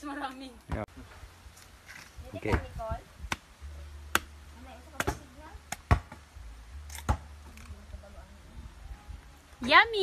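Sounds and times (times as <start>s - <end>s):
pod knocking against rock: 4.9s - 6.2s.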